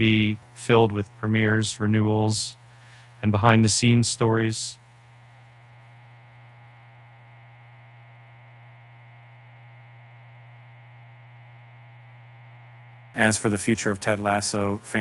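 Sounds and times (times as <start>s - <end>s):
steady low hum with hiss: 0.0s - 15.0s.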